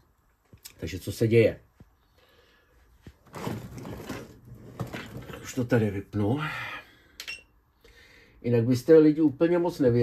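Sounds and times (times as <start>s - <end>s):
cable bundle rustling and knocking: 3.0s - 5.7s.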